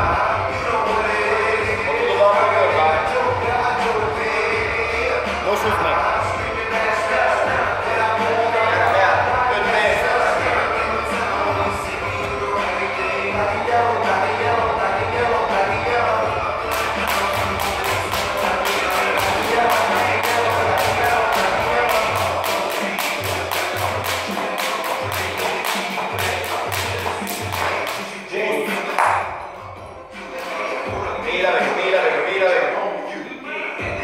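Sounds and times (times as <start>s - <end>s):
background music: 0.0s - 34.0s
jump rope ticking on floor: 16.7s - 28.1s.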